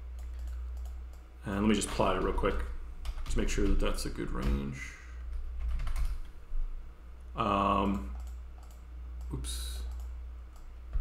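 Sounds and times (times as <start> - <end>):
typing on a computer keyboard: 0.2 - 1.2, 5.6 - 6.3, 7.8 - 10.7.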